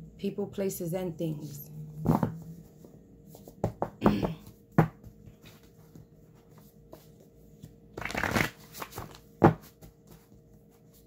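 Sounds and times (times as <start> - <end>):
paper cards riffling: 8.0 - 9.2.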